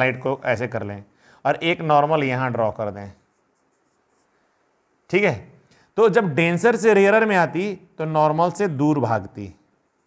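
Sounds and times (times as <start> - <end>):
marker pen on whiteboard: 2.0 - 5.0.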